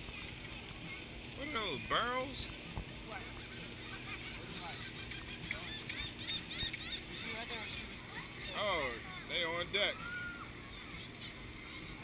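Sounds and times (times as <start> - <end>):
gulls calling: 0.0 - 12.0
wind: 0.0 - 12.0.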